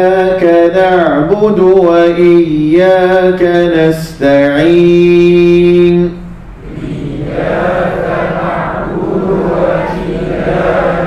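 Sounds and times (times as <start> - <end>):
man reciting: 0.0 - 8.1
group reciting in unison: 2.2 - 11.0.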